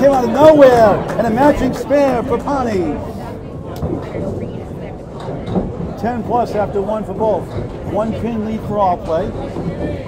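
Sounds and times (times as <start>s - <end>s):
background chatter: 0.0s - 10.0s
bowling ball rolling on wooden lane: 3.8s - 10.0s.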